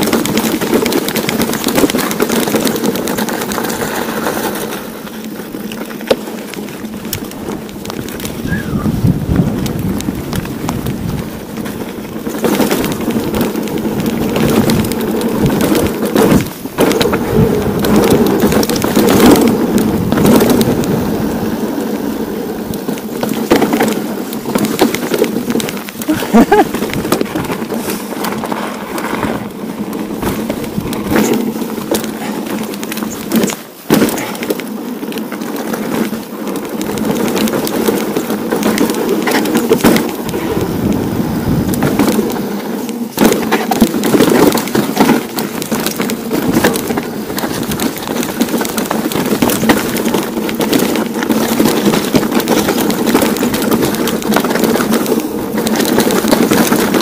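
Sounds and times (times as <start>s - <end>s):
bike knocking and rattling: 0.0s - 57.0s
bike tyres crunching over stones: 0.0s - 57.0s
wind buffeting microphone: 6.7s - 33.3s, 36.1s - 57.0s.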